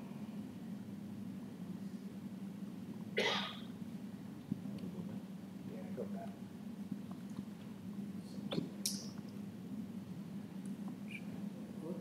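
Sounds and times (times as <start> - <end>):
person coughing: 3.2 - 3.6.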